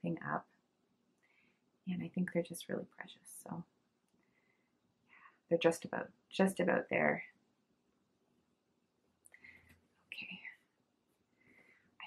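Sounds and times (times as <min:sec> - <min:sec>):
woman whispering: 0:01.9 - 0:03.6, 0:10.1 - 0:10.6.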